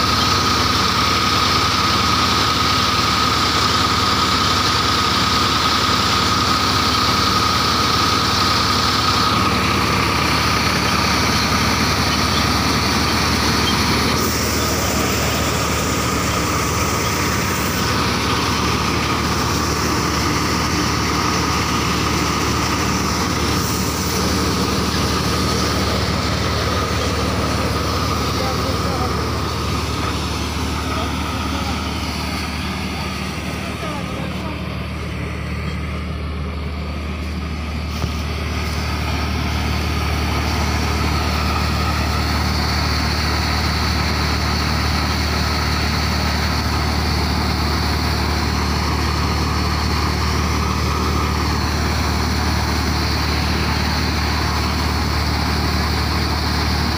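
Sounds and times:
thresher mechanical drone: 0.0s - 56.9s
tractor engine: 0.0s - 56.9s
high whine: 8.6s - 43.8s.

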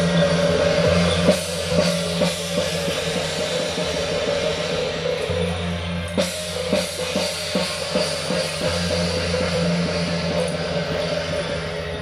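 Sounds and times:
drum strikes: 0.0s - 12.0s
hand cymbals clashing: 0.0s - 12.0s.

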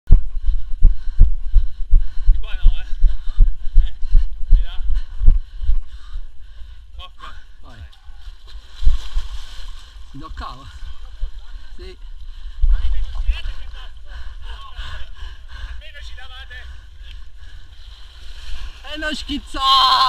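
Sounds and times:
heavy dull low thumps: 0.1s - 6.6s.

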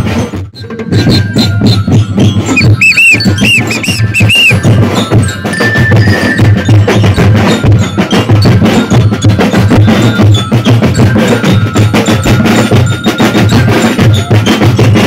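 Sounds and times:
drum corps playing: 0.1s - 15.0s
whistle blasts: 2.5s - 4.7s.

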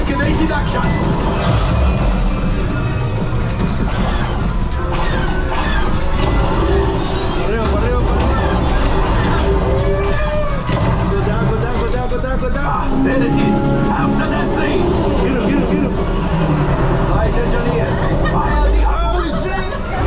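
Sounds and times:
ride soundtrack music: 0.0s - 20.0s.

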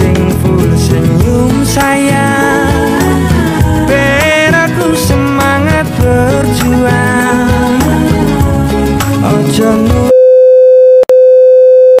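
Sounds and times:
steady electronic test tone beep: 10.1s - 12.0s.

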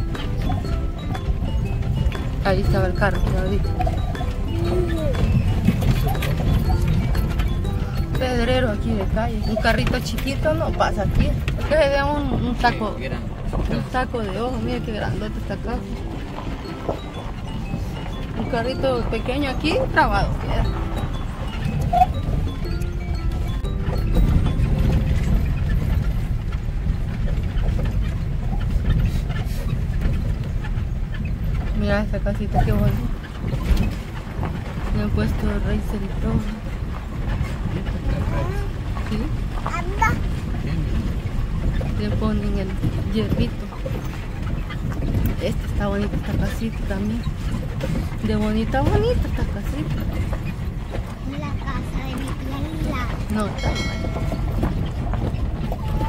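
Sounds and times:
music: 0.0s - 26.6s
knocks and rattles from bumps: 0.0s - 56.0s
vehicle rumbling on stony dirt road: 0.0s - 56.0s.

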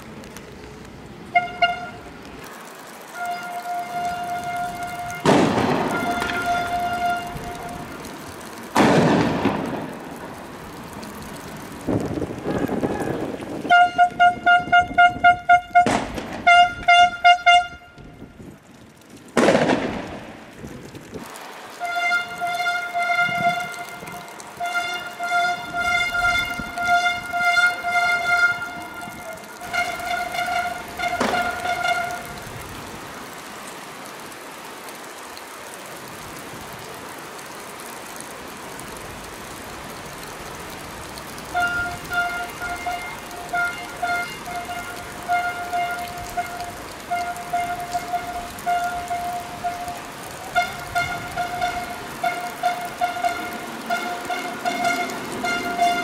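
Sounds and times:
police horn tone: 1.3s - 2.1s, 3.1s - 8.0s, 12.5s - 18.3s, 21.8s - 32.4s, 41.5s - 56.0s.

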